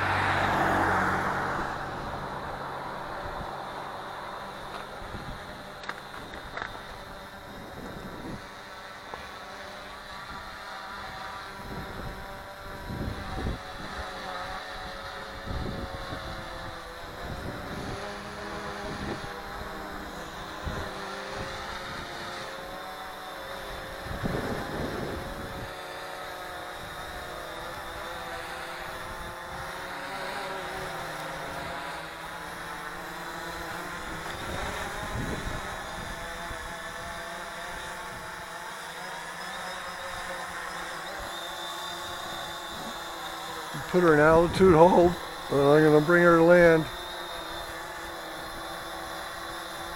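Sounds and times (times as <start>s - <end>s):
drone propellers whining: 0.0s - 49.9s.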